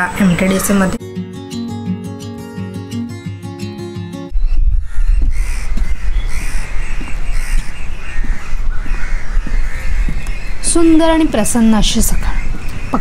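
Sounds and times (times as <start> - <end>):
birds calling: 0.0 - 13.0
background guitar music: 0.2 - 4.4.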